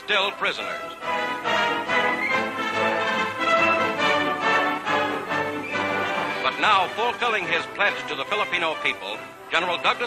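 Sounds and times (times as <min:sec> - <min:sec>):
orchestral music: 0:00.0 - 0:10.0.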